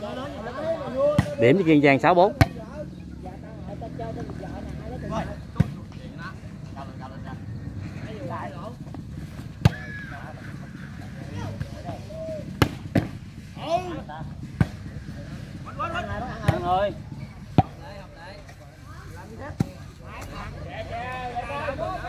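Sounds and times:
spectators shouting and chattering: 0:00.0 - 0:22.0
ball being struck: 0:01.1 - 0:01.4, 0:09.6 - 0:09.9, 0:12.5 - 0:13.2.

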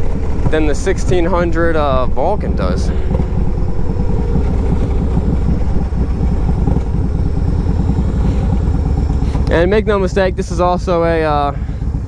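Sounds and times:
motorcycle engine pulsing exhaust: 0:00.0 - 0:12.0.

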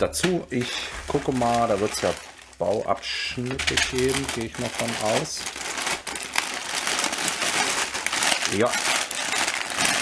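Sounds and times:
plastic bags crinkling: 0:00.0 - 0:10.0.

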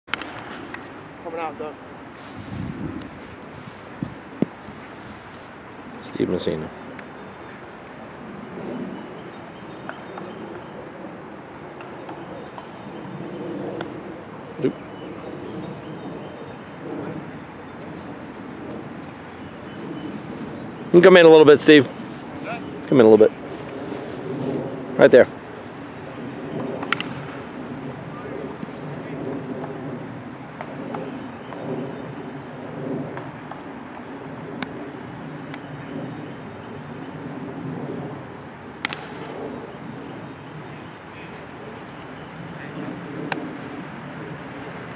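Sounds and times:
outdoor background hiss: 0:00.1 - 0:44.9
bat hitting ball: 0:38.8 - 0:39.3.

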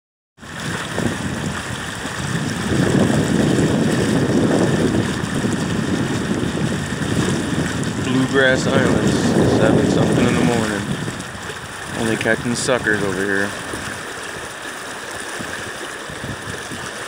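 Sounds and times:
river water rushing: 0:00.4 - 0:17.0.

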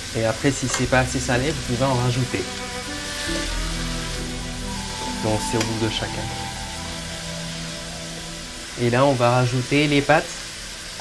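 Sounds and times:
background music: 0:00.0 - 0:11.0
shrimp and vegetables sizzling in wok: 0:00.0 - 0:11.0.

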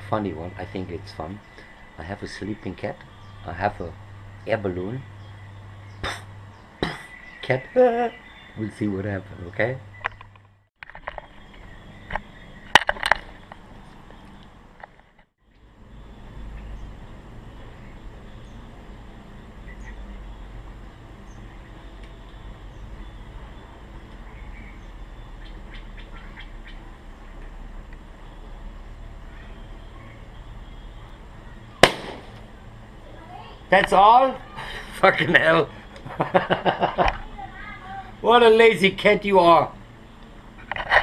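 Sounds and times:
handling knocks and clicks: 0:10.0 - 0:15.3
water balloon bursting: 0:31.8 - 0:32.5.

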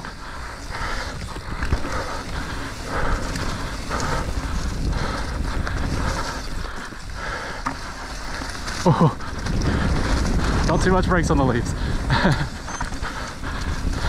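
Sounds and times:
bike rattling: 0:00.0 - 0:14.0
bike tyres rolling over dirt and leaves: 0:00.0 - 0:14.0
wind on microphone: 0:00.0 - 0:14.0.

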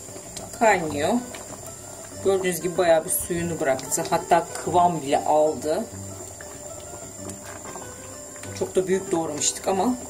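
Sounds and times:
thick sauce bubbling in a pot: 0:00.0 - 0:10.0
wooden spoon stirring: 0:00.0 - 0:10.0.

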